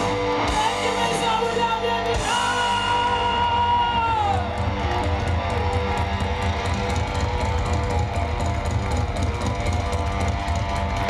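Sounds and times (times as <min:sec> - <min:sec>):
bass guitar: 0:00.0 - 0:11.0
distorted electric guitars: 0:00.0 - 0:11.0
drums: 0:00.0 - 0:11.0.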